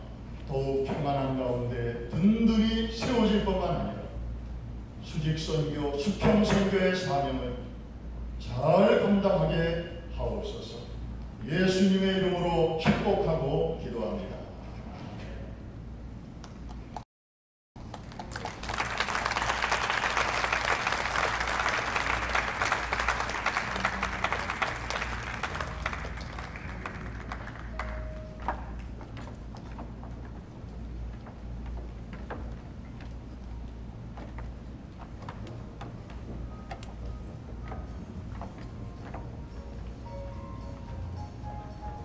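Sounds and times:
room noise: 0.0 - 17.0, 17.8 - 42.0
crowd applauding: 17.8 - 29.0.

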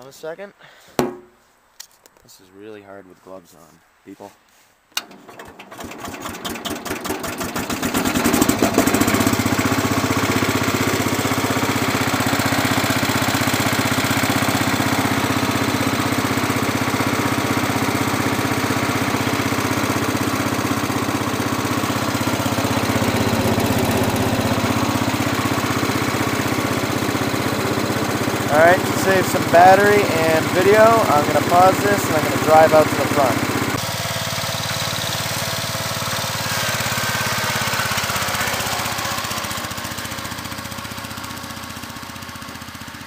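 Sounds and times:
single-cylinder engine starting: 5.0 - 43.0.

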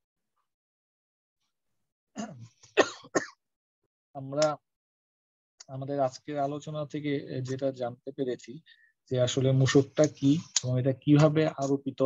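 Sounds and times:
person clearing throat: 2.2 - 3.4
person coughing: 2.2 - 3.4.

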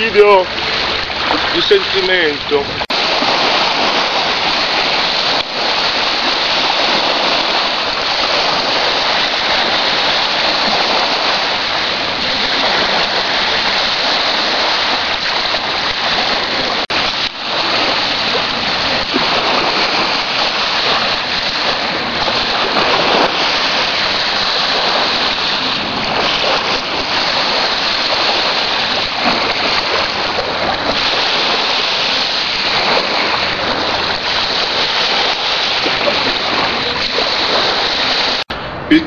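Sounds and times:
small waves washing onto beach: 0.0 - 38.5.

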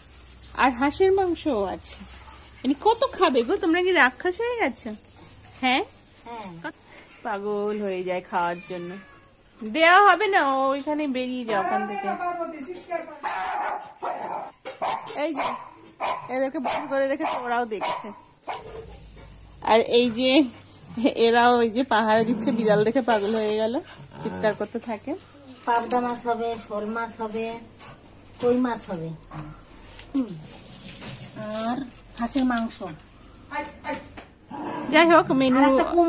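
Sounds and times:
dogs barking: 13.2 - 19.0.

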